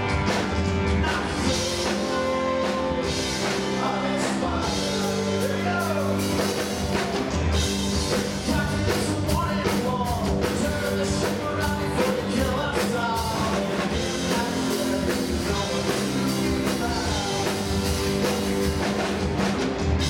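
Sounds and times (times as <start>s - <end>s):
bass guitar: 0.0s - 20.0s
drum kit: 0.0s - 20.0s
electric guitars: 0.0s - 20.0s
keyboard: 0.0s - 20.0s.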